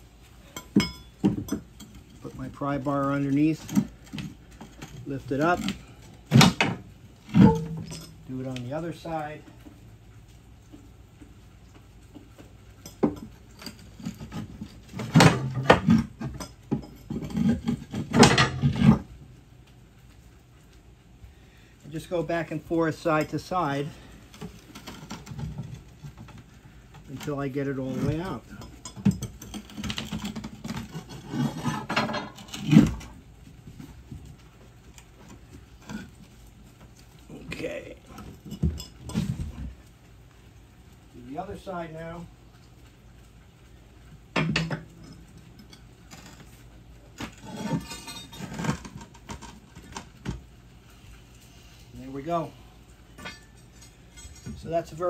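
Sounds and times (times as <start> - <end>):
pry bar scraping: 0.4 - 9.7, 12.8 - 19.1, 23.2 - 33.2, 44.4 - 50.4.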